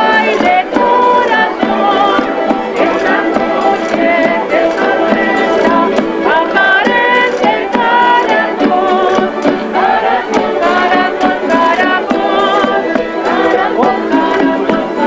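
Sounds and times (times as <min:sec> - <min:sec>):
drum beat: 0:00.0 - 0:15.0
people singing: 0:00.0 - 0:15.0
strummed and plucked strings: 0:00.0 - 0:15.0.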